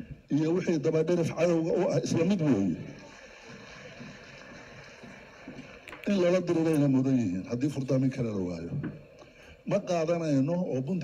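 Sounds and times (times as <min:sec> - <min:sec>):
man giving a speech: 0:00.3 - 0:03.1, 0:05.9 - 0:11.0.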